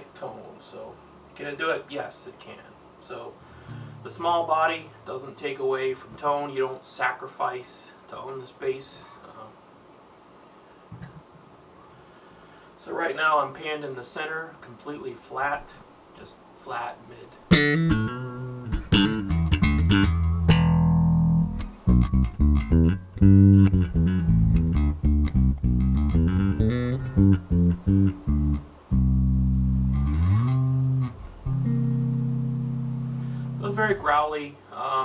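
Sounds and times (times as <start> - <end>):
electric bass plucked notes: 17.5 - 34.0.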